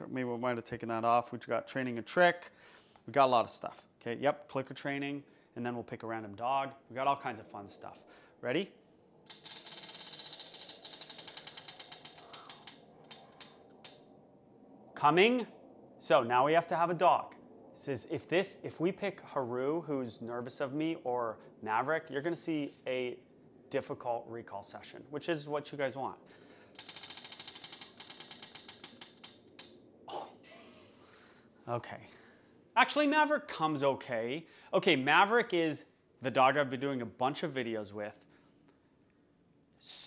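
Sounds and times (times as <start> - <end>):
prize wheel ticking: 9.3 - 14.0, 26.8 - 29.6.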